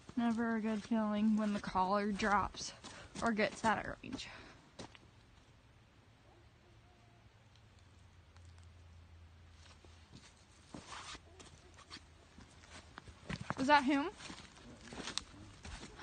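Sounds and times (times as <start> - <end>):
footsteps crunching dry leaves: 10.7 - 16.0.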